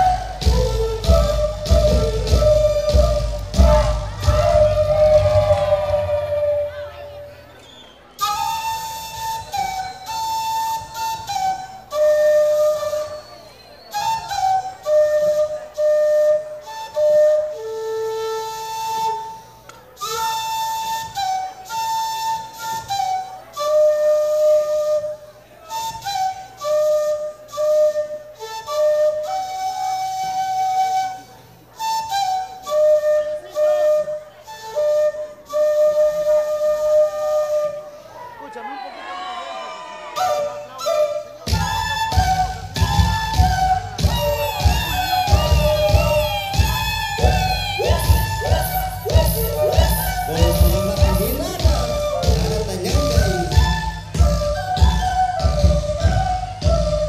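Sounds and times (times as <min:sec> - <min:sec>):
folk dance music led by flute: 0:00.0 - 0:57.0.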